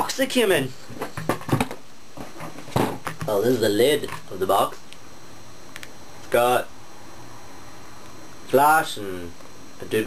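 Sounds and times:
cardboard thump: 0:01.0 - 0:03.1.

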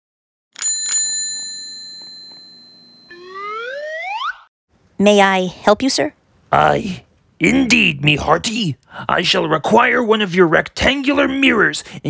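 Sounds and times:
desk service bell ringing: 0:00.6 - 0:03.4
cartoon sound effect gliding upward: 0:03.1 - 0:04.5.

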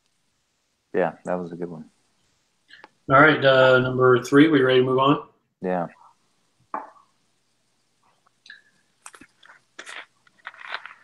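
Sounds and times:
plastic bottle crinkling: 0:08.5 - 0:11.0.

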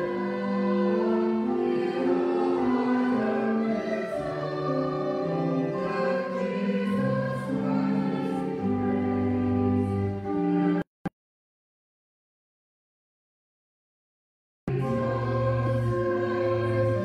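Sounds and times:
choir singing slow music: 0:00.0 - 0:10.8, 0:14.7 - 0:17.0.

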